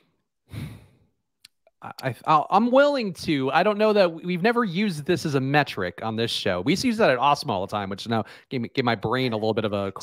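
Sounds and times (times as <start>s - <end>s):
man sighing: 0.5s - 1.1s
man speaking: 1.7s - 10.0s.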